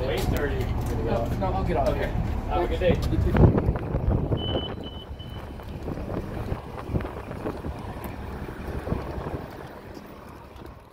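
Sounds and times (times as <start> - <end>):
vehicle engines rumbling: 0.0 - 10.9
wind buffeting microphone: 0.0 - 10.9
short high-pitched beeps: 4.3 - 5.5.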